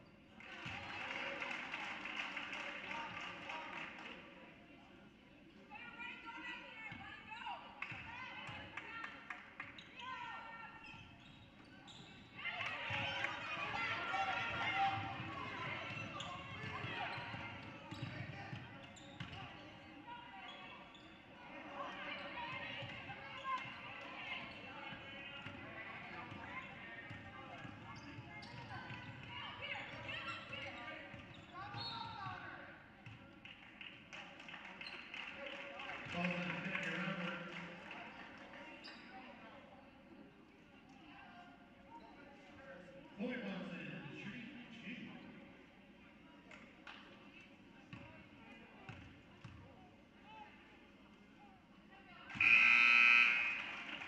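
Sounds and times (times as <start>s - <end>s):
crowd chatter: 0.0s - 54.0s.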